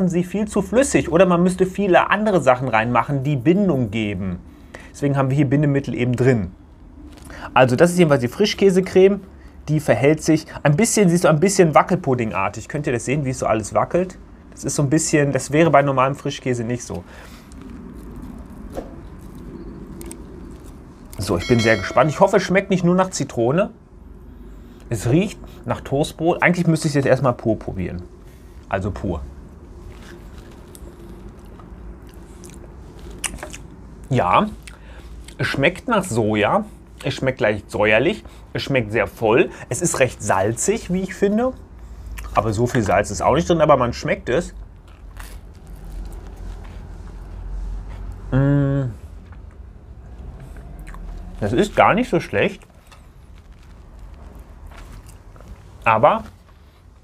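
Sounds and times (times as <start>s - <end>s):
low background rumble: 0.0s - 57.0s
low hum: 13.6s - 25.6s, 44.5s - 57.0s
person chewing: 17.2s - 21.2s, 29.8s - 33.8s, 44.6s - 48.2s, 49.1s - 51.4s, 52.6s - 55.8s.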